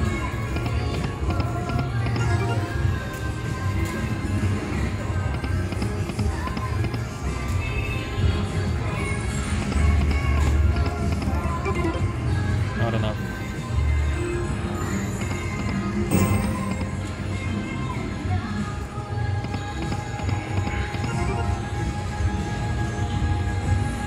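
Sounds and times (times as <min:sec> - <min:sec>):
slot machine game music: 0:00.0 - 0:07.2, 0:09.2 - 0:17.8, 0:19.4 - 0:22.2.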